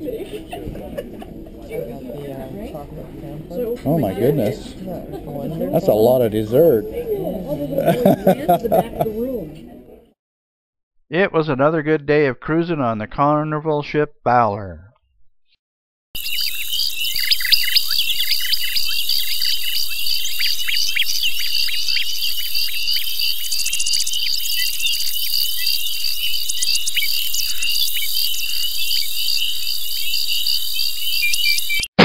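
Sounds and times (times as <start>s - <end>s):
insects chirping: 1.6s - 9.3s, 16.2s - 31.9s
high insect trill: 16.2s - 31.8s.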